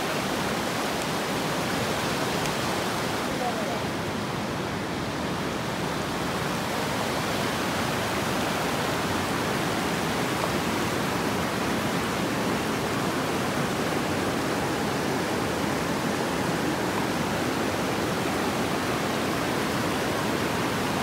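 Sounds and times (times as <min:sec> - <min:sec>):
river water rushing: 0:00.0 - 0:21.0.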